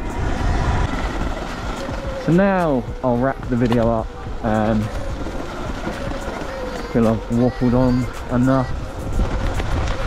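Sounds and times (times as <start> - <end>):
electric motor whine: 0.0 - 10.0
tyres rumbling over gravel: 0.0 - 10.0
wind rushing over microphone: 0.0 - 10.0.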